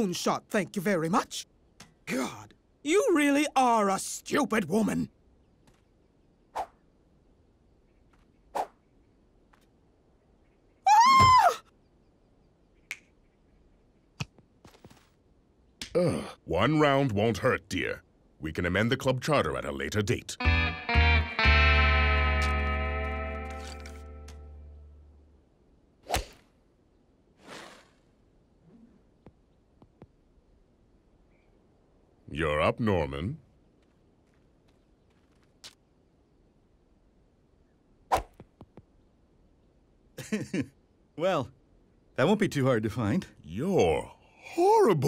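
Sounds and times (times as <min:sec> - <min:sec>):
woman's high-pitched cartoon yelp: 0:10.9 - 0:11.6.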